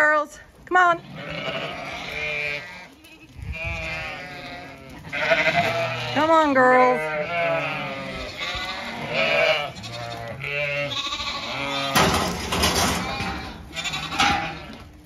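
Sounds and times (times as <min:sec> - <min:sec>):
sheep and lambs bleating: 0:00.8 - 0:15.0.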